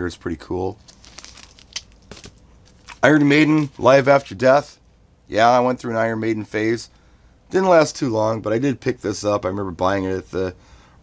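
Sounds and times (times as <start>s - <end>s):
plastic sleeve crinkling: 0.8s - 3.9s.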